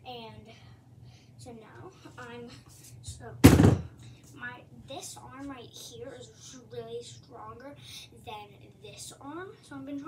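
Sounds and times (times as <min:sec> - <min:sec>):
dumbbell thud on floor: 0:03.4 - 0:03.9.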